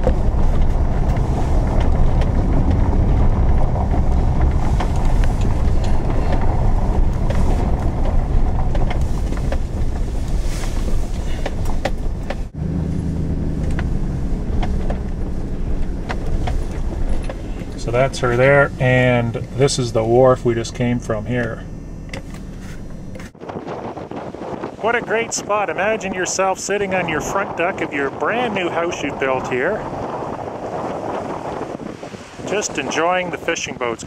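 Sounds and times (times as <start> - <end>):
truck engine running: 0.0 - 23.4
tyres rumbling on gravel: 0.0 - 34.0.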